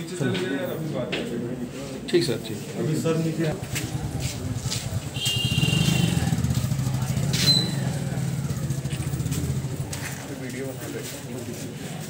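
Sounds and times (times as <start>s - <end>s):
motorcycle engine running: 3.6s - 11.6s.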